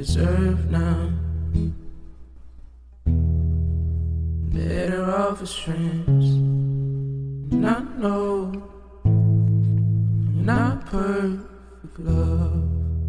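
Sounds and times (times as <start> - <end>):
person singing: 0.0 - 1.8, 4.5 - 6.7, 7.5 - 9.5, 10.2 - 13.0.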